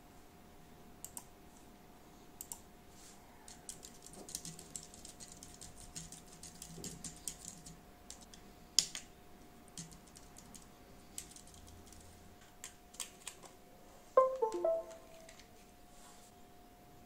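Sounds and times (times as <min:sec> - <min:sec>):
keypad keys clicking: 0:03.5 - 0:09.0, 0:09.8 - 0:12.0
computer chime: 0:14.2 - 0:15.4.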